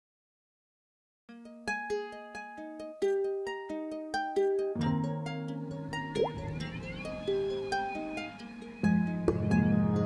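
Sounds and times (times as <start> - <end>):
plucked string instrument melody: 1.3 - 10.0.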